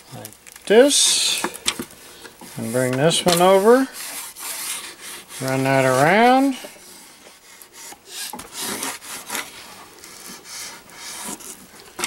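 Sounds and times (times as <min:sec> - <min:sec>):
laminating film rubbing: 0:00.0 - 0:12.0.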